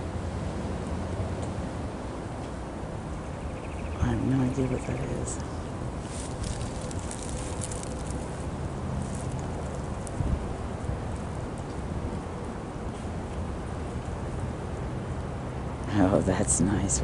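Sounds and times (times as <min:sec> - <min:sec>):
wind on microphone: 0:05.9 - 0:12.3
faint rustling: 0:06.0 - 0:10.4.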